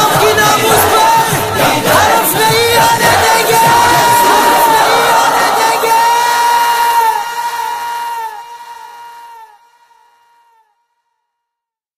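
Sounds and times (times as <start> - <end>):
background of voices: 0.0 - 7.3.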